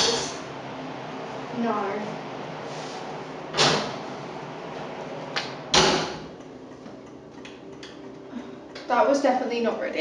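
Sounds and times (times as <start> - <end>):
oven door thump: 3.5 - 4.0, 5.7 - 6.3.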